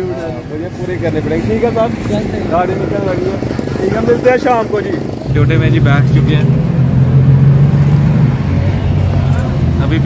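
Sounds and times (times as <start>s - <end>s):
van engine drone: 0.0s - 10.0s.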